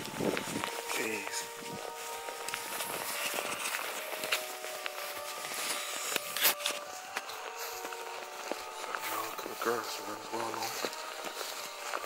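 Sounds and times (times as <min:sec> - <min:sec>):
footsteps through long grass: 0:00.0 - 0:12.0.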